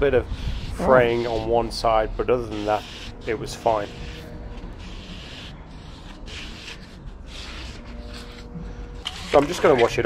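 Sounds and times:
steady low rumble: 0.0 - 9.1
hands rubbing foam insert: 0.5 - 10.0.

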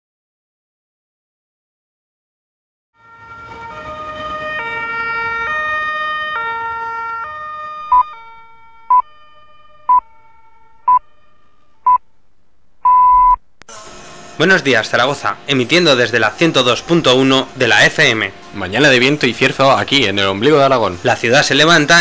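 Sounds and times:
two-tone emergency siren: 3.0 - 12.0
radio time signal pips: 7.9 - 8.2, 12.8 - 13.4.

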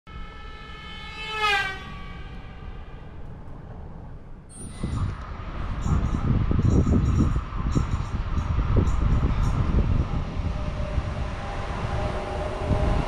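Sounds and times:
train horn: 0.1 - 6.5, 9.2 - 13.0
passing train rumble: 0.1 - 13.0.

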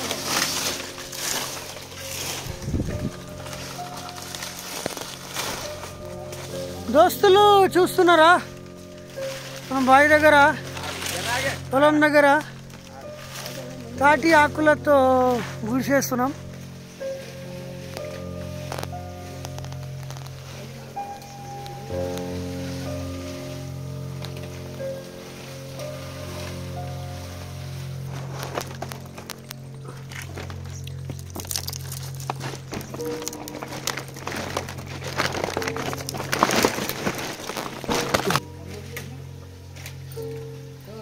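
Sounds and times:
background music sustained notes: 0.0 - 41.0
dry palm fronds crackling: 0.0 - 41.0.

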